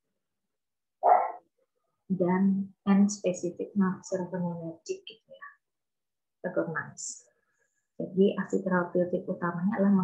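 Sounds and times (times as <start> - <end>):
dog bark: 1.0 - 1.4.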